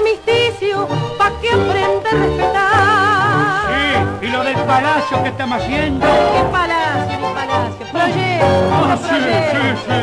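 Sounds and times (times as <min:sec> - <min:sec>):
tango orchestra playing: 0:00.0 - 0:10.0.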